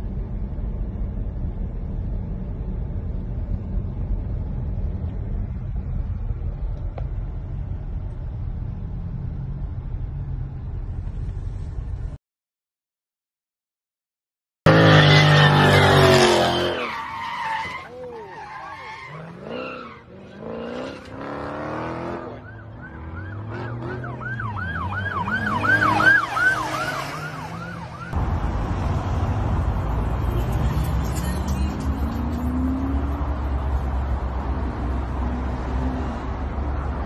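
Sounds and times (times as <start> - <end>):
road traffic rumble: 0.0 - 12.2, 14.7 - 37.0
tyre squeals: 14.8 - 20.1
car engine revving: 18.9 - 36.6.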